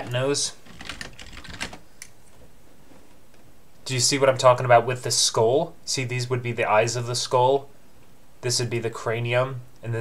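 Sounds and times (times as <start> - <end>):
computer keyboard typing: 0.6 - 1.8.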